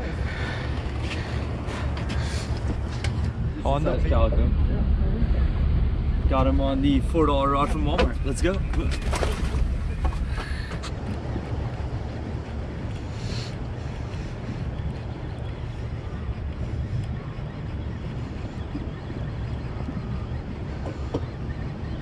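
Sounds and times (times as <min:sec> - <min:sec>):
steady low rumble: 0:00.0 - 0:22.0
wind buffeting microphone: 0:00.0 - 0:22.0.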